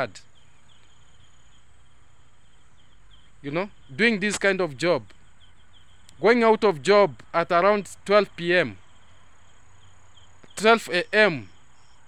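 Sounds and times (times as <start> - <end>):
insects chirping: 0.0 - 12.0.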